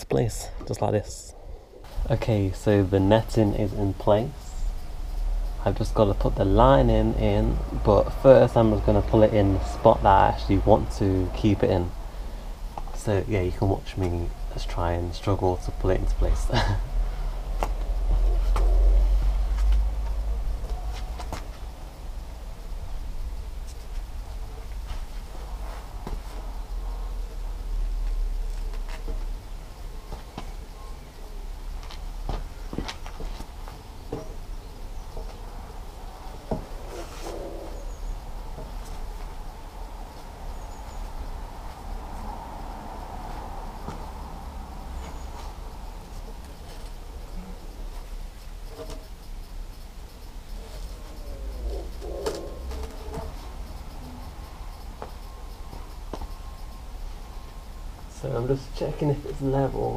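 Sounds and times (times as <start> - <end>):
low wind rumble: 0.0 - 59.9
tyre rubber creaking on poles: 15.6 - 22.2, 31.8 - 42.4, 50.2 - 56.3
tyre knocking and scraping on poles: 36.3 - 39.4.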